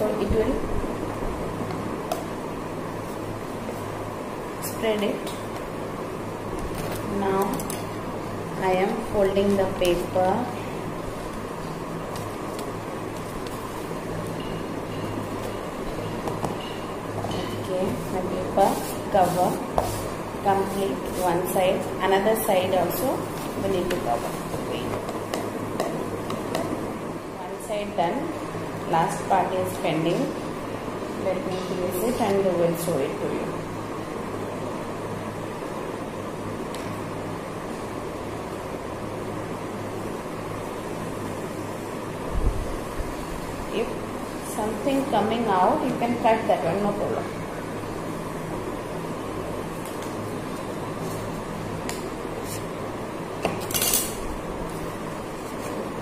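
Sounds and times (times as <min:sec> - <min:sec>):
steady low hum: 0:00.0 - 0:56.0.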